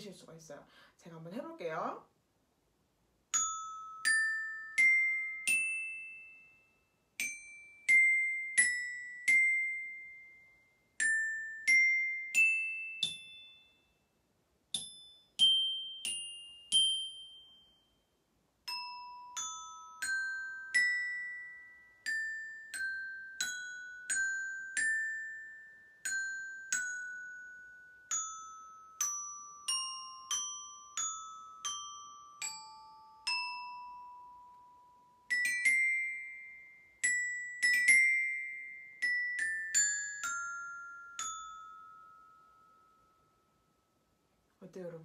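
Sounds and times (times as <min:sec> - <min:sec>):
metal xylophone notes: 0:03.4 - 0:06.6, 0:07.2 - 0:13.8, 0:14.7 - 0:18.0, 0:18.7 - 0:43.3.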